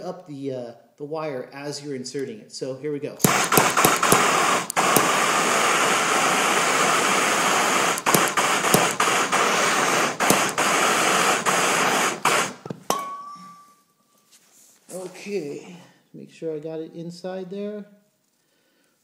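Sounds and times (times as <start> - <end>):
gas torch hissing: 3.2 - 12.8.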